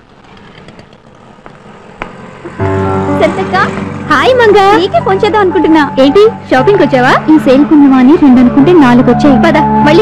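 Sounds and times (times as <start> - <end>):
faint city street traffic: 0.0 - 10.0.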